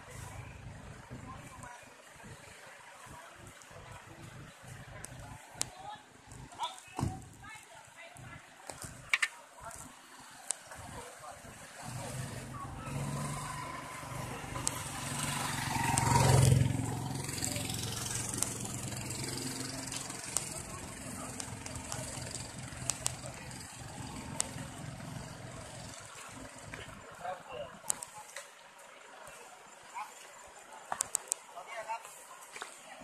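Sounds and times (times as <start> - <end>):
engine hum: 10.7 - 28.0
motorcycle passing by: 11.8 - 27.2
sharp clicks: 19.9 - 23.6, 31.0 - 31.4.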